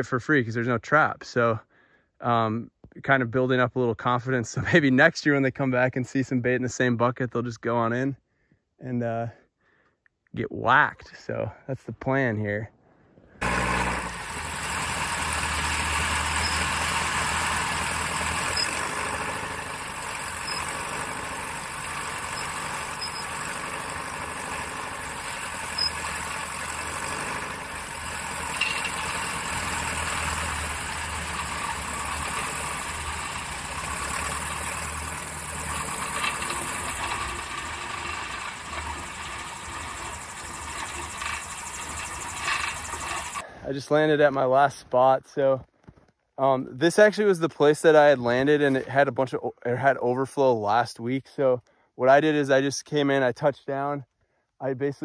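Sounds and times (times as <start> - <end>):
airplane engine and propeller: 13.4 - 43.4.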